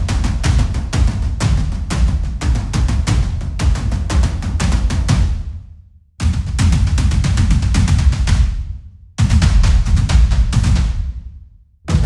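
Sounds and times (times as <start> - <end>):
processed tom drum hits: 0.0 - 5.6, 6.2 - 11.3.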